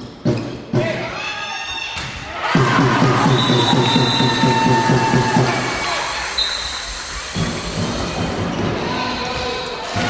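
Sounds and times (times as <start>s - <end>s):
shoes squealing on hall floor: 3.2s - 10.0s.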